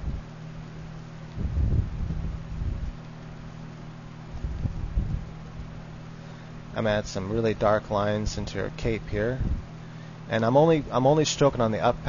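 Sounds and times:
low microphone hum: 0.0s - 12.0s
muffled microphone rumbles: 1.3s - 3.0s, 4.4s - 5.7s, 7.0s - 9.7s.

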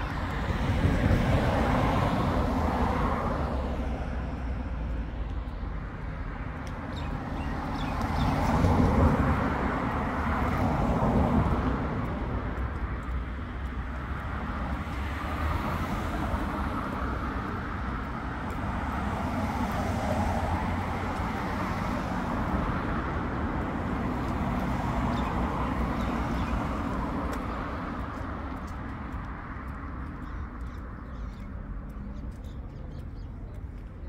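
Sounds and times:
cars driving past: 0.0s - 34.0s.

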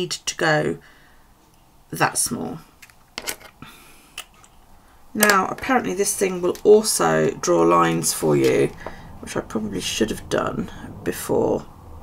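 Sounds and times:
clicks and taps of desk items: 2.8s - 3.6s.

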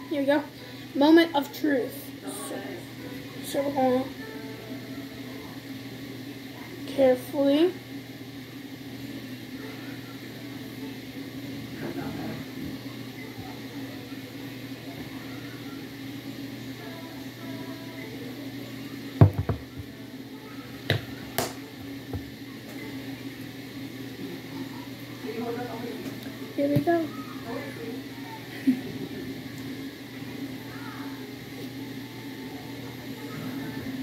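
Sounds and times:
ceiling fan humming: 0.0s - 34.0s.

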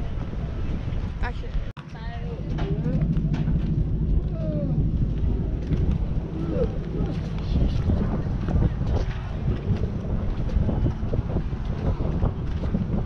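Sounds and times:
distant voices: 0.0s - 13.0s
wind rumble on microphone: 0.0s - 13.0s.

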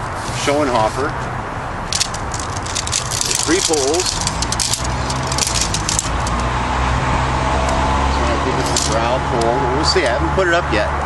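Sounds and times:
low engine hum: 1.2s - 11.0s
tent pole sections clicking: 1.9s - 6.6s, 8.6s - 9.6s.

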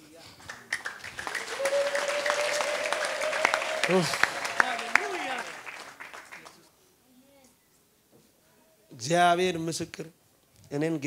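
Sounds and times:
congregation applauding: 0.3s - 6.7s.

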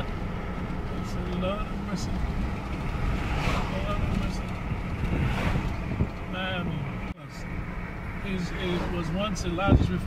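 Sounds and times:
road and engine rumble in car: 0.0s - 10.0s
wind noise: 2.6s - 6.3s, 9.5s - 10.0s.

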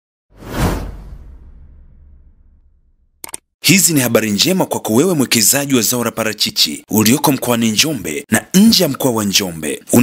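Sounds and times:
swoosh with deep rumble: 0.4s - 3.1s.

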